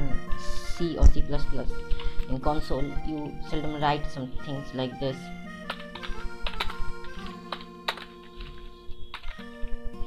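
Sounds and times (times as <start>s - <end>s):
background music with held tones: 0.0s - 10.0s
keyboard key clicks: 5.6s - 9.4s.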